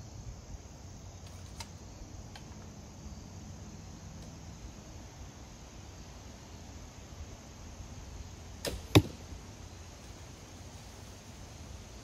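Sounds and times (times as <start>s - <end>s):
quiet outdoor background: 0.0s - 12.0s.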